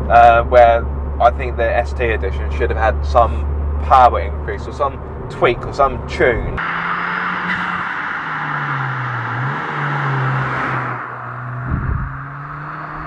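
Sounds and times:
tyre and road noise: 0:00.0 - 0:13.0
car engine driving past: 0:06.6 - 0:13.0
low rumble: 0:10.3 - 0:13.0.

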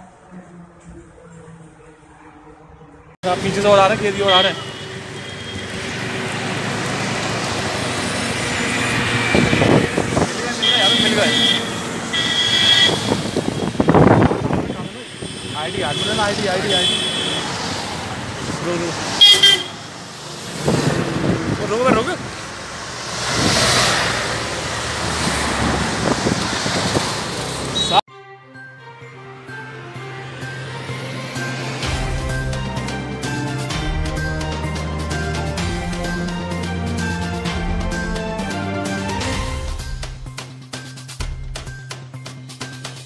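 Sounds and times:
vehicle road and wind noise: 0:00.0 - 0:28.1, 0:29.3 - 0:40.4.

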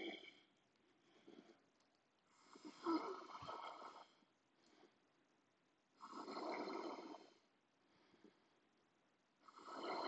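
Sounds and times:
person breathing hard: 0:07.4 - 0:08.7.

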